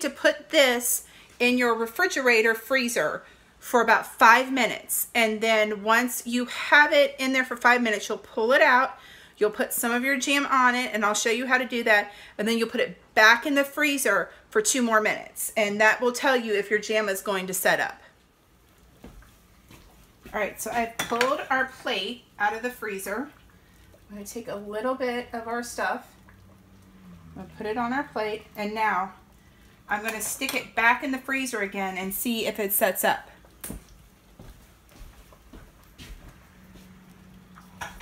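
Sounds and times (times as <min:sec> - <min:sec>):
low steady hum: 0:16.8 - 0:38.0.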